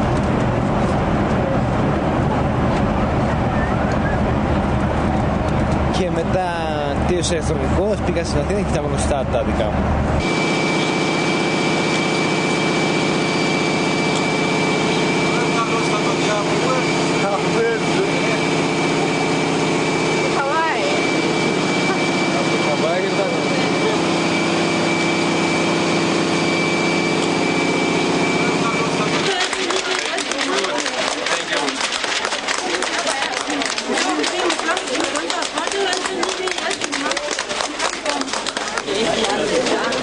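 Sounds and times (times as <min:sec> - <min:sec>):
jet engine drone and whine: 0:00.0 - 0:29.8
faint voices: 0:26.9 - 0:40.0.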